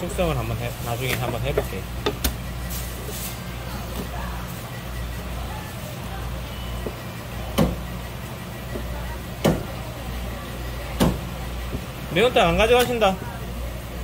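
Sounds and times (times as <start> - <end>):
low machine hum: 0.0 - 14.0.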